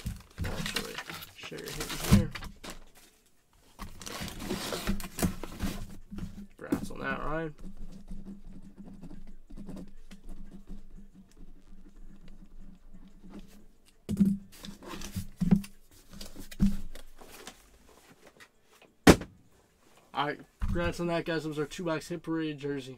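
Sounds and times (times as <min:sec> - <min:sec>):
sharp knock: 0:19.0 - 0:19.3.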